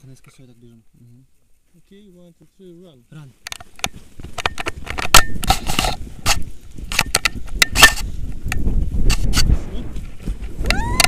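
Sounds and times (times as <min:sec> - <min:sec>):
wind buffeting microphone: 0:03.7 - 0:11.0.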